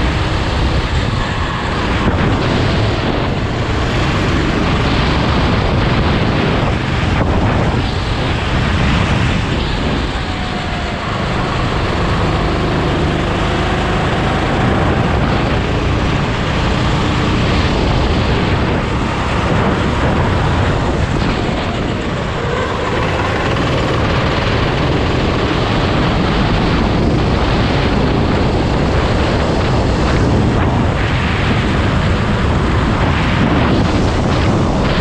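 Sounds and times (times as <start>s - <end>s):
go-kart engine running: 0.0s - 35.0s
wind rushing on microphone: 0.0s - 35.0s.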